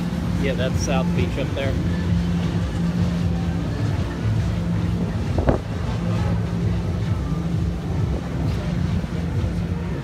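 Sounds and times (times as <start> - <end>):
boat engines droning: 0.0 - 10.0
wind on microphone: 4.8 - 6.2.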